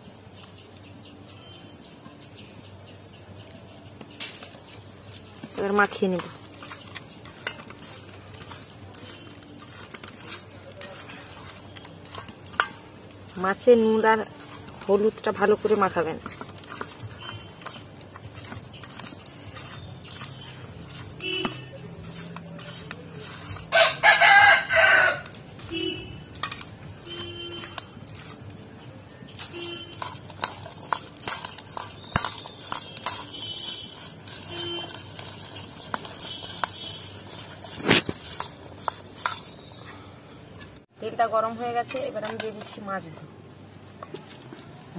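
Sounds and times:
hand mixing fish in steel bowl: 3.4 - 40.0, 40.6 - 43.1
chickens calling: 16.9 - 26.0
rooster crowing: 23.7 - 25.3.

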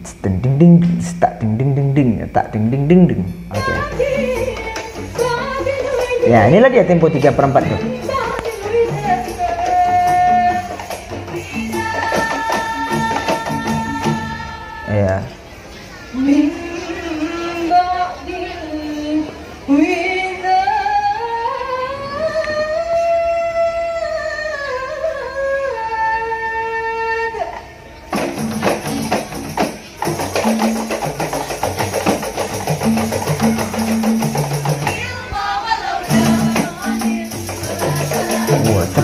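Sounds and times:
frame drums fast beat: 28.1 - 35.1, 36.0 - 39.0.

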